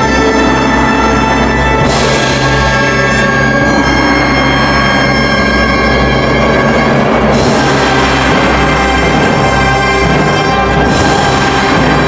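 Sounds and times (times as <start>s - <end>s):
traditional orchestra chord: 0.0s - 12.0s
trumpets playing: 0.0s - 12.0s.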